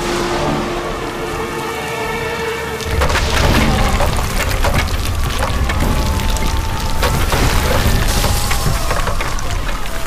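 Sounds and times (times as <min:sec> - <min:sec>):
rain: 0:00.0 - 0:10.0
deep thunder rumble: 0:02.9 - 0:10.0.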